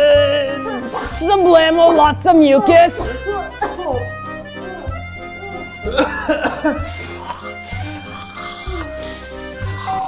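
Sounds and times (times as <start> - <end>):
background music with bass line: 0.0 - 10.0
woman coughing: 3.3 - 4.1, 5.5 - 7.6.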